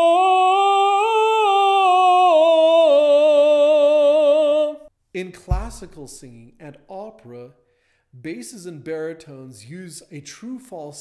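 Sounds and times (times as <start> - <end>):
man singing falsetto note: 0.0 - 4.9.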